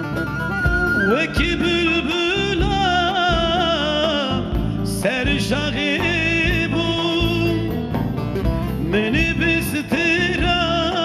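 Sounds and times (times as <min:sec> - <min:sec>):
instrumental accompaniment: 0:00.0 - 0:11.0
man singing folk song: 0:01.1 - 0:07.9, 0:08.8 - 0:11.0.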